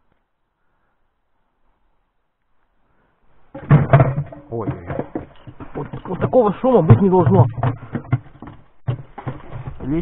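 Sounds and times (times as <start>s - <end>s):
loud thuds and knocks: 3.5s - 10.0s
man talking: 4.5s - 5.1s, 5.8s - 7.6s, 9.8s - 10.0s.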